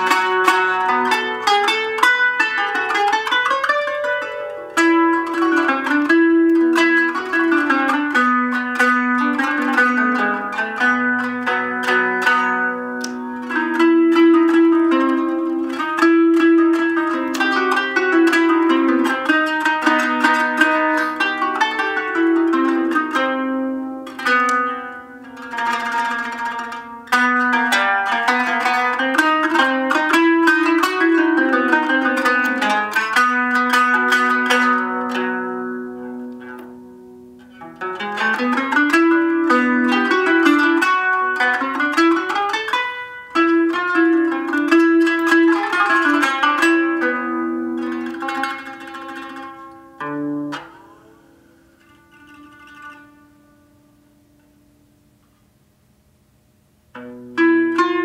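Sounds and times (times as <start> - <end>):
plucked zither playing solo: 0.0 - 54.8, 56.9 - 58.0.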